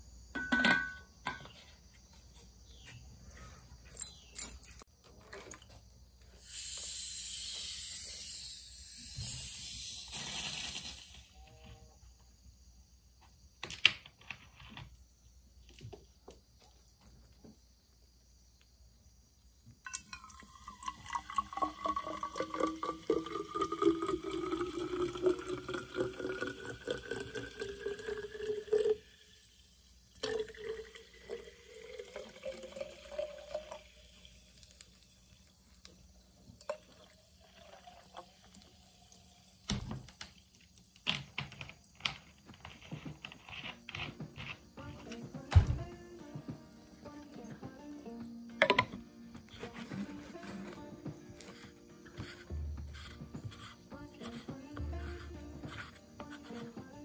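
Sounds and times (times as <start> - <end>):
soda bottle hissing open: 6.4 - 11.4, 19.9 - 40.5
soda pouring fizzing and gurgling: 19.9 - 41.0.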